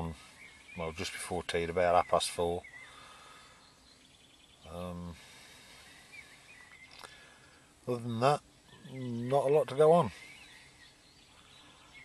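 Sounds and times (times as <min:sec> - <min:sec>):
bird calls: 0:00.0 - 0:12.0.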